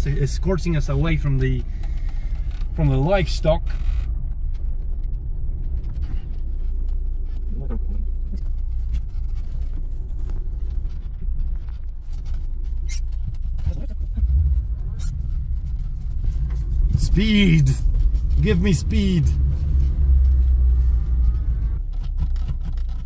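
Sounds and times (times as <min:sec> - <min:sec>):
car engine and road rumble: 0:00.0 - 0:23.0.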